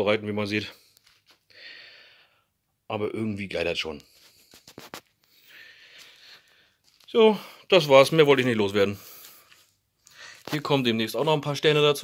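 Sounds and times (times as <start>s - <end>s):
faint breath: 0.8s - 2.6s, 5.3s - 7.7s, 9.0s - 10.5s.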